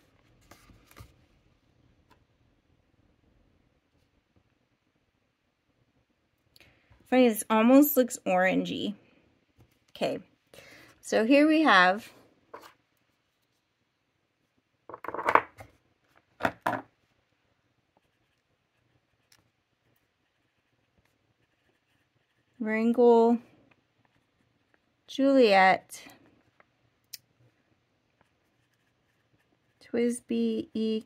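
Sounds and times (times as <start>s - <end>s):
pen nib scratching paper: 18.0s - 23.0s, 28.1s - 29.8s.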